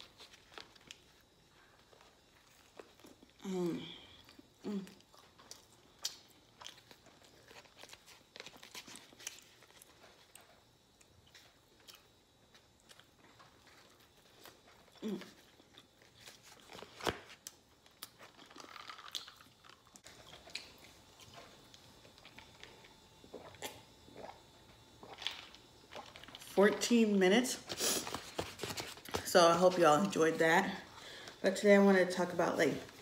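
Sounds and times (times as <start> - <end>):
person chewing food: 0.0 - 26.5
person humming mm: 3.4 - 5.0
paper wrapper crinkling: 6.7 - 9.8.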